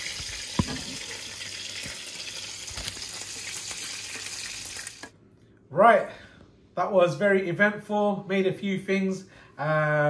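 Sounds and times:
kebabs sizzling in hot oil: 0.0 - 5.1.

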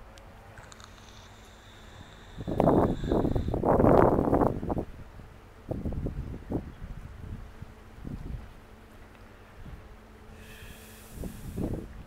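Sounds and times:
wind buffeting microphone: 2.3 - 8.6, 11.1 - 12.0.

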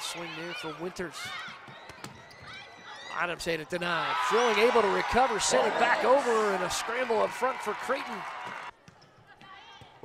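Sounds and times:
crowd and gym noise: 0.0 - 10.0.

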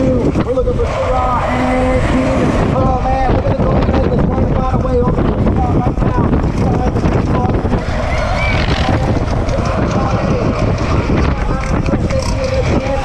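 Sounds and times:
distant announcer voice: 0.0 - 13.0
wind buffeting microphone: 0.0 - 13.0.

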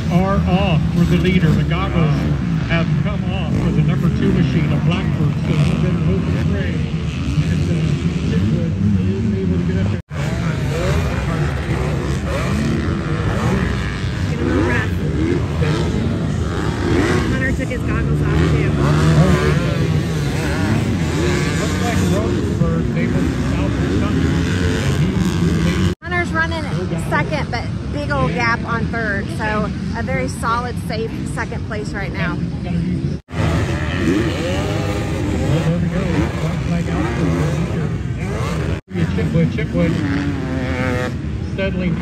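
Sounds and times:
dirt bike engines revving: 0.0 - 42.0.

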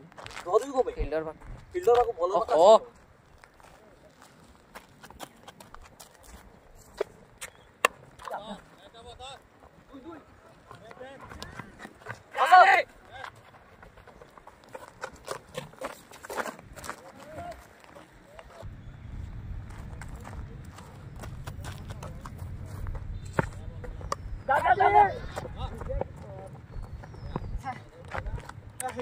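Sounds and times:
player shouting: 12.3 - 13.0, 24.5 - 25.4.

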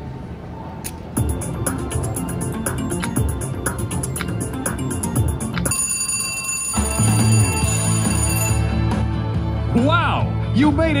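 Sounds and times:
low slot machine music: 1.2 - 11.0
slot machine bell ringing: 1.7 - 9.1.

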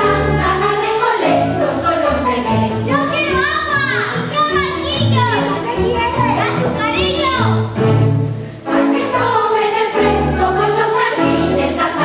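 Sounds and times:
children singing and calling out: 0.0 - 8.0, 8.6 - 12.0
orchestral accompaniment: 0.0 - 12.0.

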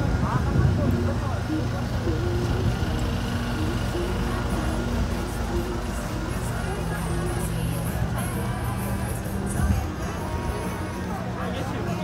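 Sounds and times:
low city rumble: 0.0 - 12.0
voices of passers-by: 0.0 - 12.0.

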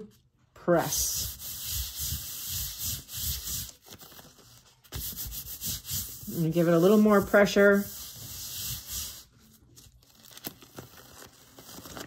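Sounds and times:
palm rubbing paper: 0.8 - 9.9
paper crinkling and ticking: 3.6 - 5.0, 9.6 - 12.0.

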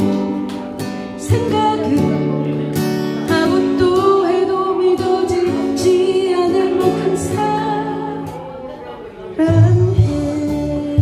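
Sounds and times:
strummed acoustic guitar: 0.0 - 11.0
woman singing into a microphone: 0.0 - 11.0.

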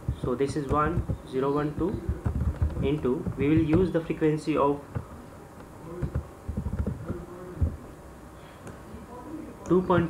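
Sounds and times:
computer keys typing: 0.0 - 5.1, 5.9 - 7.8
faint electrical buzz: 0.0 - 10.0.

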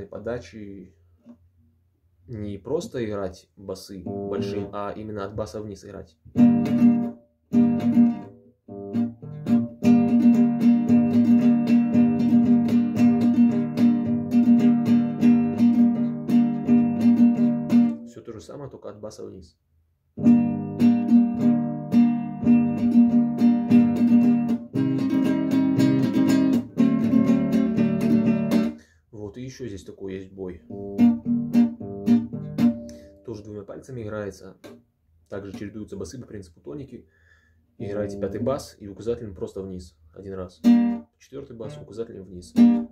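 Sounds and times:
classical guitar strumming: 4.0 - 5.0, 6.3 - 18.2, 20.2 - 28.8, 30.7 - 33.5, 37.8 - 38.6, 40.6 - 42.9.

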